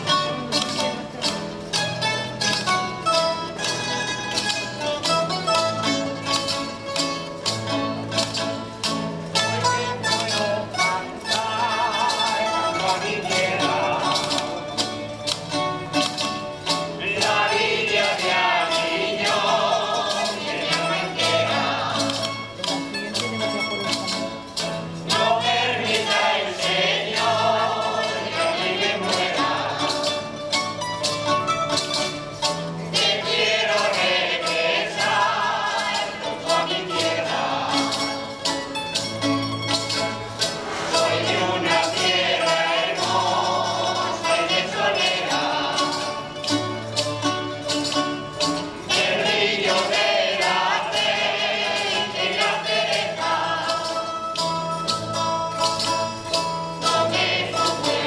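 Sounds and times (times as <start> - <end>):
strummed plucked strings: 0.0 - 58.0
group singing in unison: 9.3 - 15.4, 16.0 - 22.6, 25.0 - 30.4, 32.9 - 38.8, 40.4 - 46.9, 48.6 - 54.5, 56.7 - 58.0.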